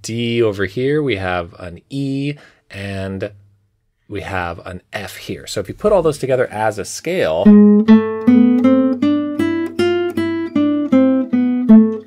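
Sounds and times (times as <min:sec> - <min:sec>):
classical guitar plucking scale: 0:07.4 - 0:12.0.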